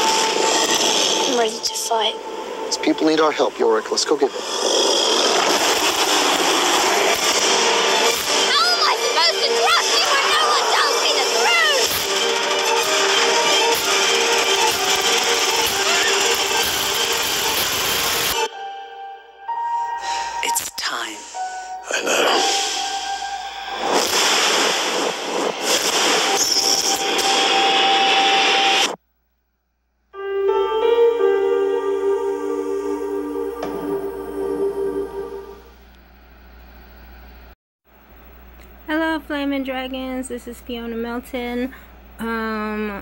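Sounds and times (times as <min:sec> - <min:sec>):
loud wash of noise: 0:04.3 - 0:15.6, 0:22.4 - 0:29.0
loud rushing roar: 0:04.3 - 0:18.4.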